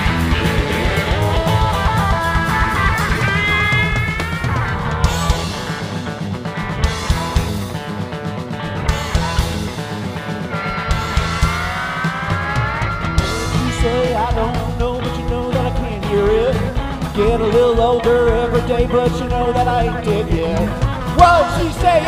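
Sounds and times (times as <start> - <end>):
bass guitar: 0.0 - 22.0
drums: 0.0 - 22.0
electric guitar lead: 0.0 - 22.0.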